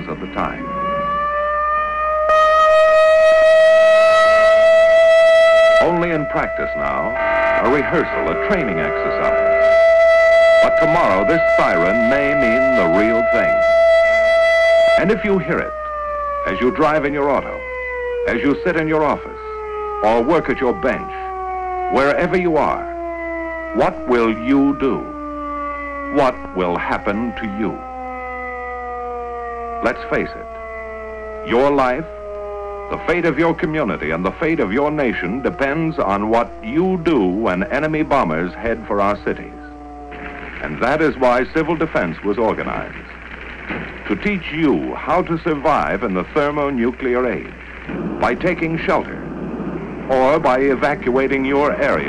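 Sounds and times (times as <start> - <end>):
air-raid siren wailing: 0.0 - 52.0.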